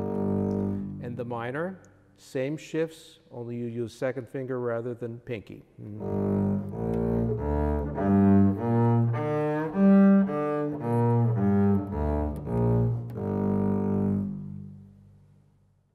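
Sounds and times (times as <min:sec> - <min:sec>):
bowed double bass arpeggio: 0:00.0 - 0:01.4, 0:05.9 - 0:15.0.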